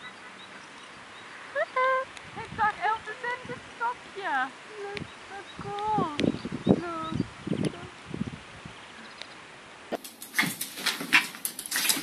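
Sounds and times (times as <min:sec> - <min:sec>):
claws clicking on wooden floor: 0:10.0 - 0:12.0.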